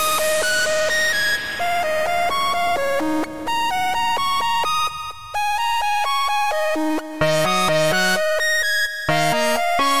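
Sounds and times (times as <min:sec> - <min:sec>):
electronic synth music: 0:00.0 - 0:10.0.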